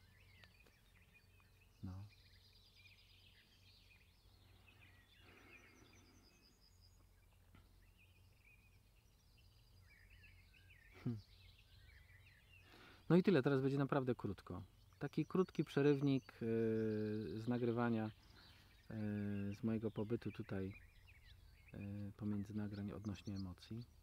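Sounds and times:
faint birdsong chirps and trill: 0:00.0 - 0:24.0.

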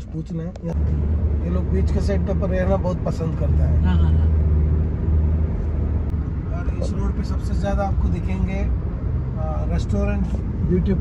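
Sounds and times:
vehicle engine and road noise: 0:00.0 - 0:11.0.

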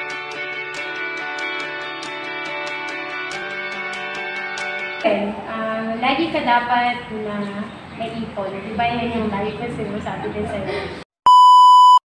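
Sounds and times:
voices: 0:05.0 - 0:11.0
steady test-tone beep: 0:11.2 - 0:12.0.

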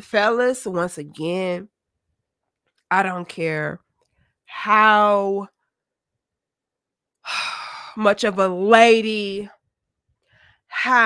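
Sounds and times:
woman speaking: 0:00.0 - 0:01.7, 0:02.9 - 0:03.8, 0:04.5 - 0:05.5, 0:07.9 - 0:09.6, 0:10.8 - 0:11.0.

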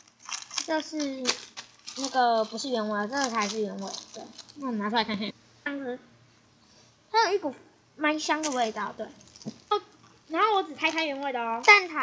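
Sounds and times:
girl's voice: 0:00.6 - 0:06.0, 0:07.1 - 0:12.0.

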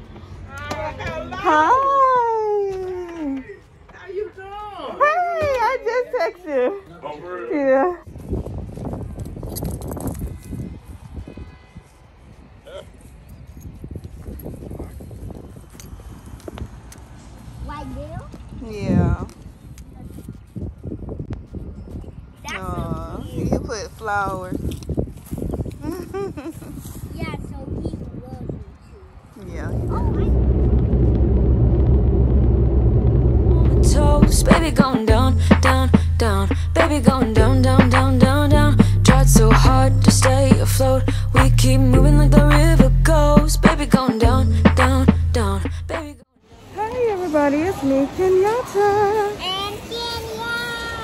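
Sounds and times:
wind buffeting microphone: 0:07.8 - 0:45.6
car road and engine rumble: 0:29.2 - 0:50.9.

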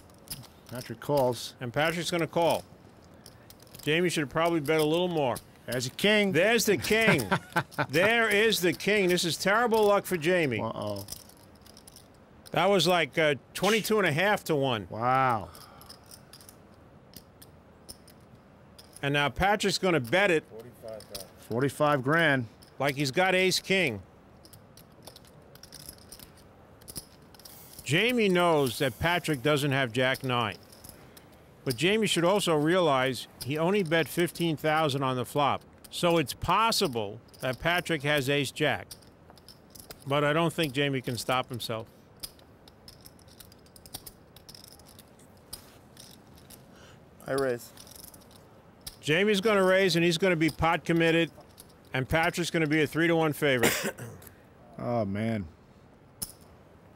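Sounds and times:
poker chips clicking: 0:00.0 - 0:13.0, 0:13.6 - 0:14.0, 0:24.4 - 0:46.7.

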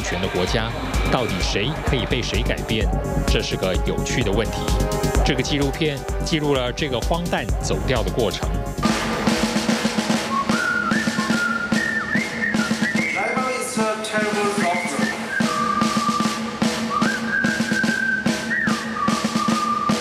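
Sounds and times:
drum beat: 0:00.0 - 0:20.0
whistle-like lead melody: 0:00.0 - 0:20.0.

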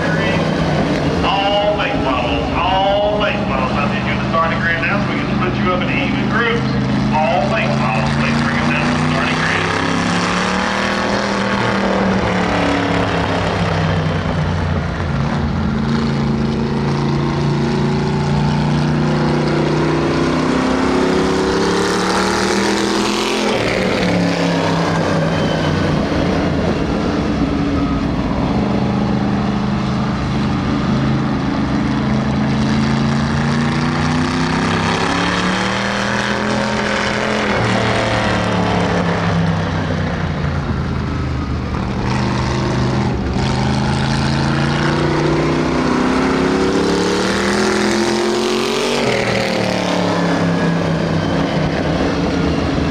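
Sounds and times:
race car engine revving: 0:00.0 - 0:52.9.

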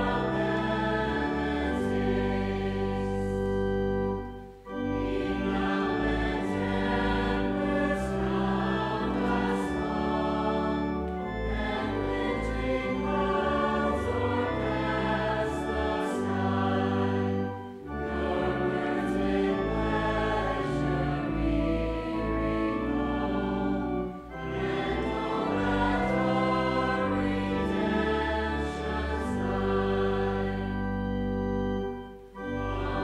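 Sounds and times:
organ: 0:00.0 - 0:33.0
voices singing a hymn: 0:00.0 - 0:33.0.

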